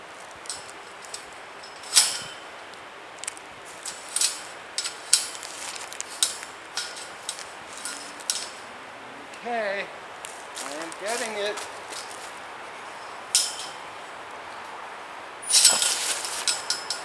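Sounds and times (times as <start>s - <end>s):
steel wire knocking against metal stakes: 0.4s - 2.5s, 3.7s - 8.6s, 13.3s - 13.8s, 15.4s - 17.0s.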